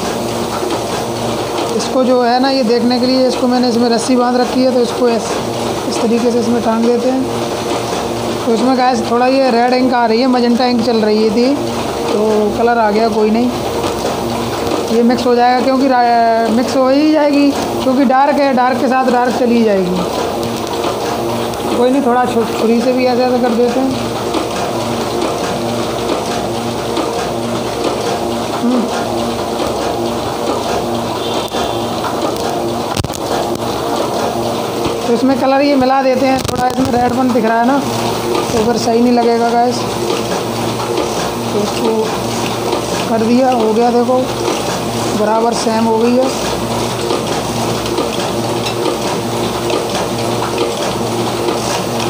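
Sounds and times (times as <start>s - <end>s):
printing press mechanical clatter: 0.0s - 52.0s.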